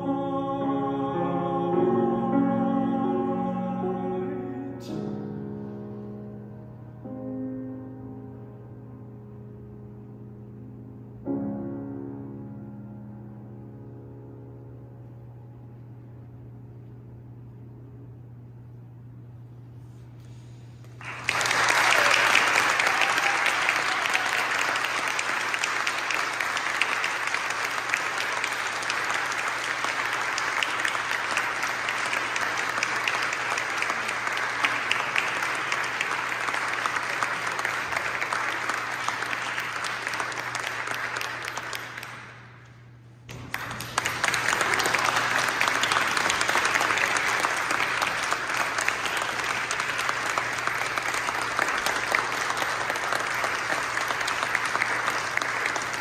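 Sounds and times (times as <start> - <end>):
audience applauding: 20.8 - 56.0.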